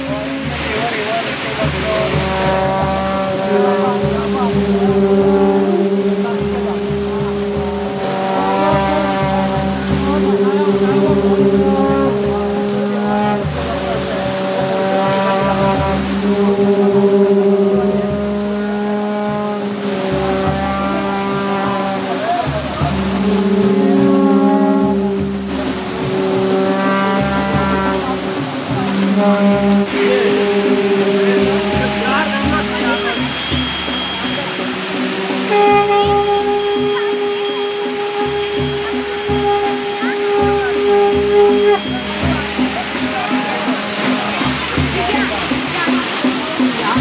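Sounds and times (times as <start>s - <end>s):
crowd voices: 0.0s - 47.0s
wind instruments playing held notes: 0.0s - 47.0s.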